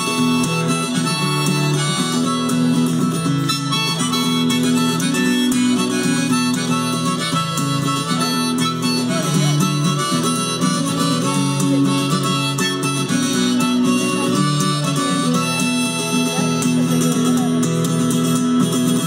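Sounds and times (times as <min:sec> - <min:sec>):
acoustic guitar strumming: 0:00.0 - 0:19.0
harmonica long notes: 0:00.0 - 0:19.0.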